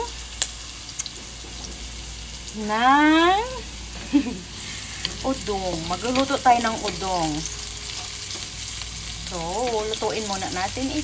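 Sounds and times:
garlic and onion sizzling in oil: 0.0s - 11.0s.

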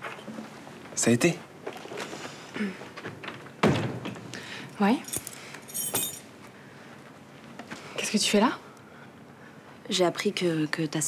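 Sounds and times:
metal objects jingling: 4.8s - 6.3s.

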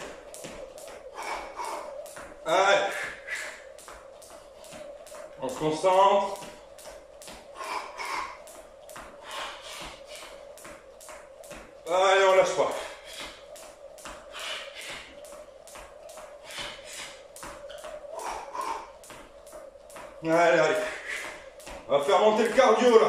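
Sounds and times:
jump rope slapping tiled floor: 0.0s - 23.0s.

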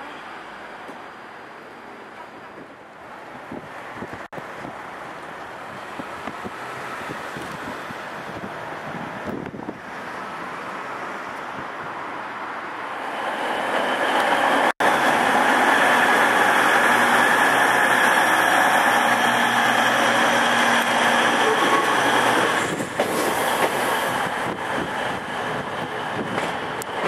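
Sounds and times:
train wheels rumbling on rail: 0.6s - 27.0s
clicks of train wheels: 20.8s - 24.6s, 25.5s - 27.0s.

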